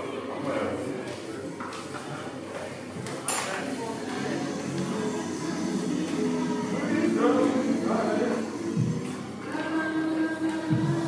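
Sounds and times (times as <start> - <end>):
indistinct voices murmuring: 3.6 - 11.0.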